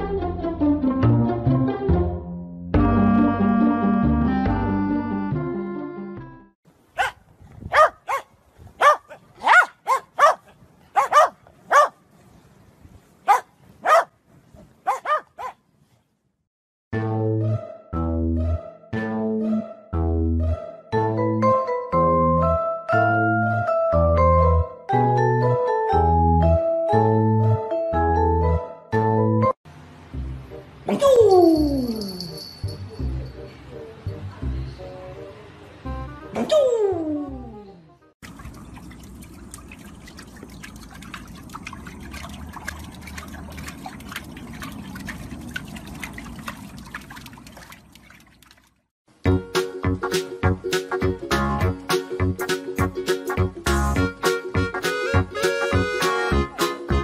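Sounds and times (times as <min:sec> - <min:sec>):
background music: 0:00.0 - 0:06.5, 0:17.0 - 0:38.1, 0:49.2 - 0:57.0
dog barking: 0:07.0 - 0:12.0, 0:13.2 - 0:14.1, 0:14.8 - 0:15.6.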